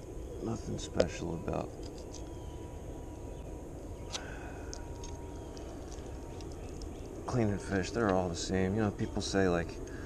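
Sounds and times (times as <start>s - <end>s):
low outdoor rumble: 0.0s - 10.0s
thin steady high tone: 0.0s - 10.0s.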